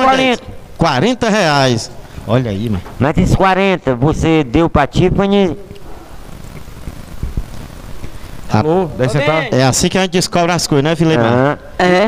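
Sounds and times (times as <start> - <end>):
rushing background noise: 0.0 - 11.0.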